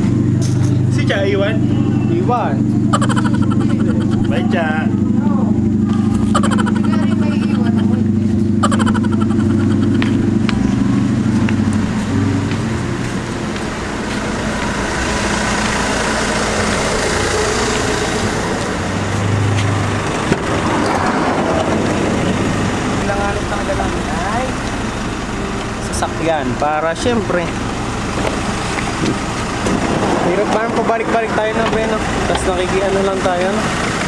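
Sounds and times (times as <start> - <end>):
noisy rush: 0.0 - 34.0
vehicle engine idling: 0.0 - 34.0.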